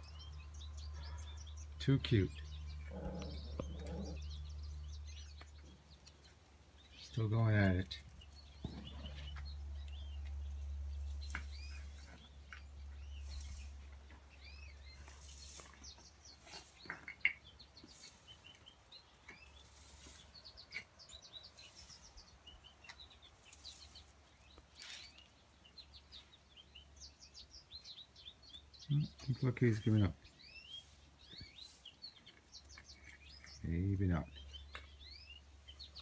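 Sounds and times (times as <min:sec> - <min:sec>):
birds chirping and singing: 0:00.0 - 0:36.0.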